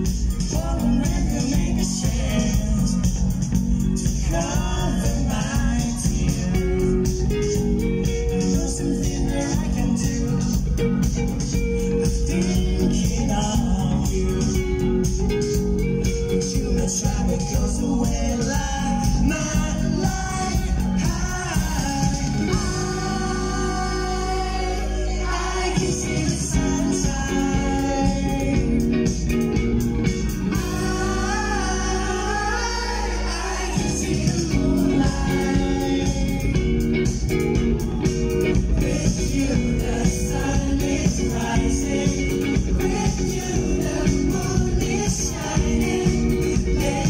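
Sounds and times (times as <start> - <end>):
drums with steady beat: 0.0 - 47.0
guitar: 0.0 - 47.0
live band playing: 0.0 - 47.0
person singing: 0.0 - 47.0.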